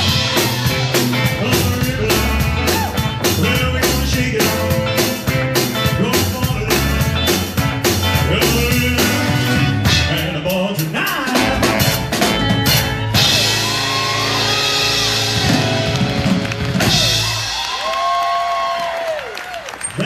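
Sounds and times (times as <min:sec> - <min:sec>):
man singing long notes: 0:00.0 - 0:07.2, 0:08.2 - 0:11.9
live rock band playing: 0:00.0 - 0:18.7.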